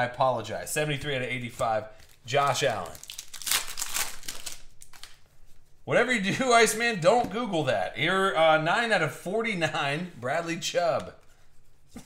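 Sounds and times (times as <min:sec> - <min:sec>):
foil wrapper crinkling: 0:02.0 - 0:05.3.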